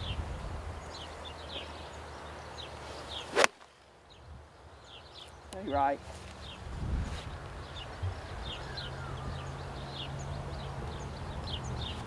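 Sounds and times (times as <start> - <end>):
wind rumbling on microphone: 0.0 - 3.2, 4.1 - 12.0
golf club striking ball: 3.3 - 3.7.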